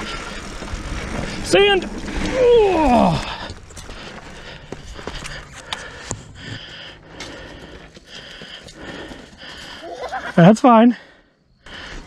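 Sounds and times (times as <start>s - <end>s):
bike knocking and rattling: 0.0s - 9.5s
tyre noise on dirt: 0.0s - 10.5s.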